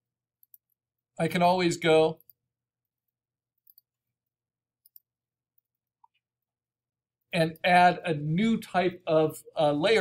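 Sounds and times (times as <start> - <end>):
computer mouse clicks: 3.6 - 4.0, 4.8 - 5.1
person speaking: 7.3 - 10.0.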